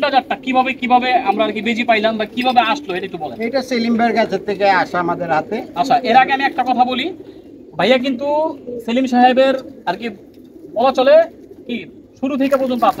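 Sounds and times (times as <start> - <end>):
men talking: 0.0 - 13.0
pigeons cooing: 0.0 - 13.0.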